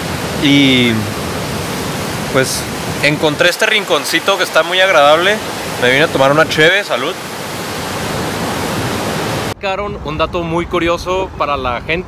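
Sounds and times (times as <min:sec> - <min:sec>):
steady rushing noise: 0:00.0 - 0:12.0
man talking: 0:00.4 - 0:01.1, 0:02.3 - 0:07.2, 0:09.6 - 0:12.0.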